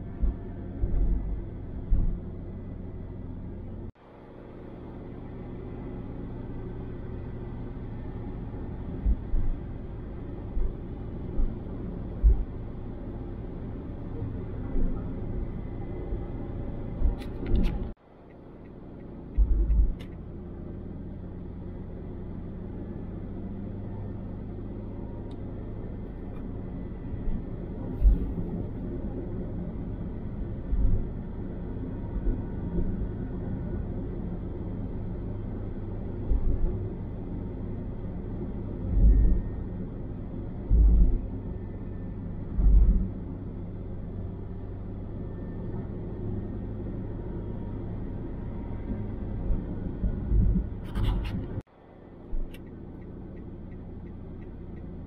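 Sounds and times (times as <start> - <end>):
car tyre and engine rumble: 0.0 - 55.0.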